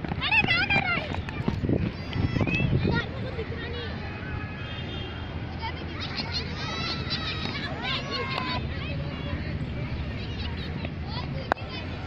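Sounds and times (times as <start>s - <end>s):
children calling out: 5.2s - 9.5s.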